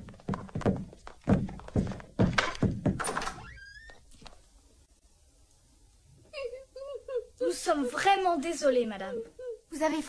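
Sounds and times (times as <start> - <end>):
heavy fight thuds and knocks: 0.4 - 3.0.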